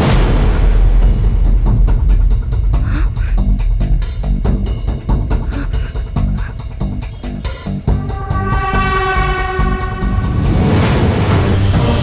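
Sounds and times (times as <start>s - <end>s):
driving drum beat: 0.0s - 12.0s
long held horn-like tone: 8.0s - 10.6s.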